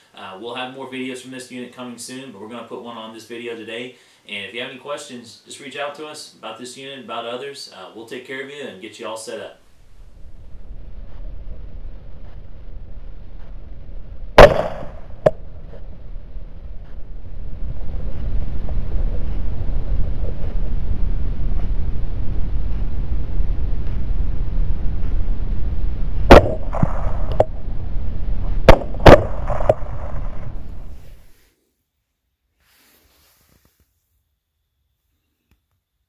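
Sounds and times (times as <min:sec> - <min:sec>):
steady low rumbling: 0:09.6 - 0:31.3
rifle shots: 0:14.4 - 0:15.4, 0:26.3 - 0:27.4, 0:28.6 - 0:31.0.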